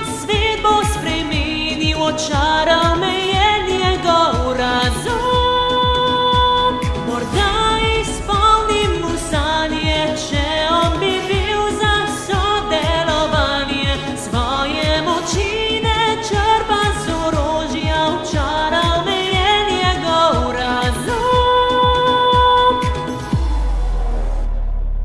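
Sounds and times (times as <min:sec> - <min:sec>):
woman singing: 0:00.0 - 0:23.4
instrumental backing track: 0:00.0 - 0:23.7
steady kick drum beat: 0:00.0 - 0:23.8.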